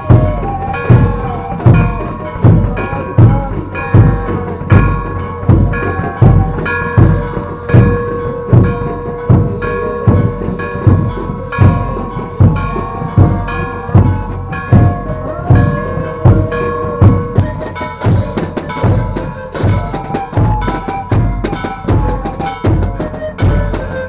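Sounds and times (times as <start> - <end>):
bass drum beat: 0.0 - 24.0
procession band music: 0.0 - 24.0.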